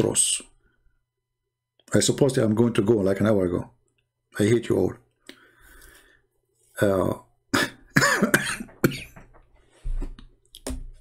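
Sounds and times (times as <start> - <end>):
man coughing: 7.5 - 9.3.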